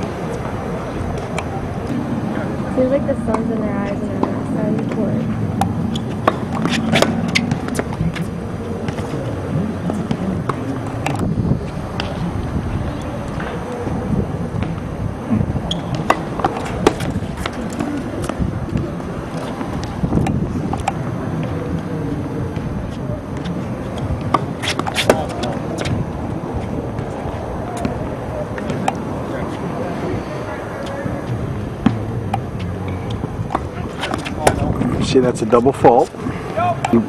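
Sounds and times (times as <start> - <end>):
tennis balls struck by rackets: 0.0 - 34.9, 35.8 - 37.0
faint voices: 0.0 - 37.0
wind on microphone: 0.0 - 37.0
balls bouncing on hard court: 2.8 - 34.8.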